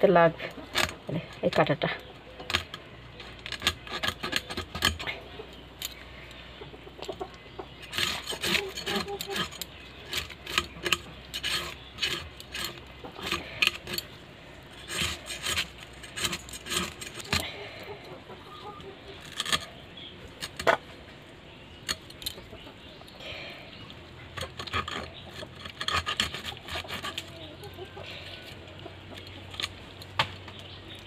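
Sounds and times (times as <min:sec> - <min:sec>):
fish scales scraped on metal: 0:02.4 - 0:05.2, 0:07.8 - 0:17.5, 0:24.3 - 0:27.4.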